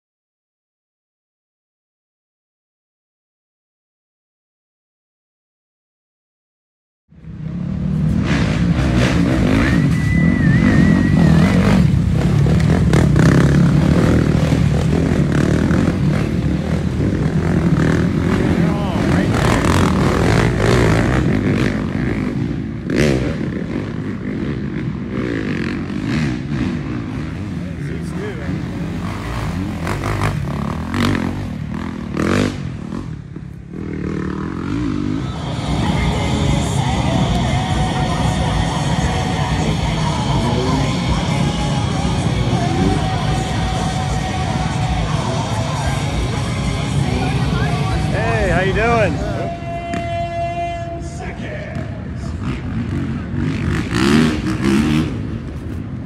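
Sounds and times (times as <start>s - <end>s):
motorcycle engines revving: 7.1s - 56.0s
people's voices: 9.0s - 56.0s
music: 35.2s - 48.2s.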